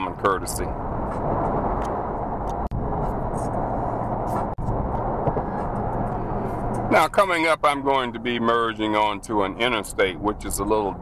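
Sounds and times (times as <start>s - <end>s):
road and wind noise in a car: 0.0s - 11.0s.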